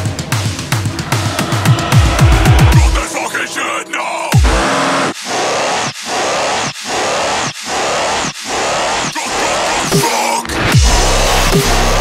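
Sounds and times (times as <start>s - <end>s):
pulsing hiss-like synth noise: 0.6s - 12.0s.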